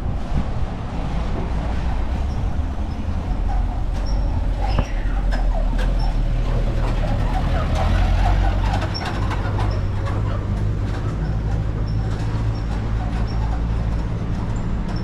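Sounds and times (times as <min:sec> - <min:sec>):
vehicle engine rumbling: 0:00.0 - 0:15.0.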